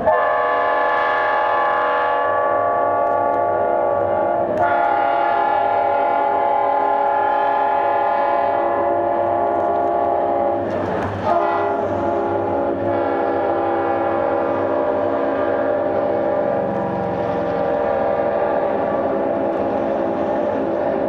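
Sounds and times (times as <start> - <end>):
train air horn blasts: 0.0 - 16.7.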